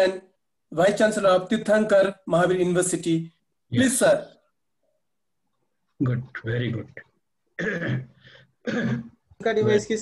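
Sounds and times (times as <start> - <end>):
person speaking: 5.6 - 8.2, 9.0 - 10.0
person clearing throat: 7.6 - 9.2.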